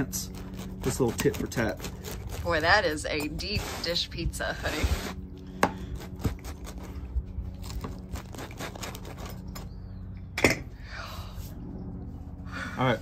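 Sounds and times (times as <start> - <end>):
pizza cutter crackling through crust: 0.0 - 4.0, 5.9 - 7.0, 7.6 - 9.7.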